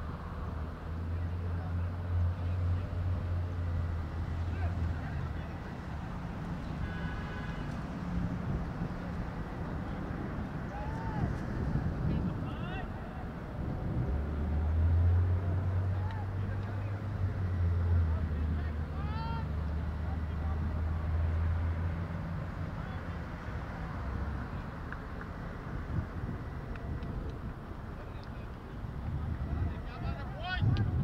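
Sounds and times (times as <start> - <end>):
distant voices: 0.0 - 31.0.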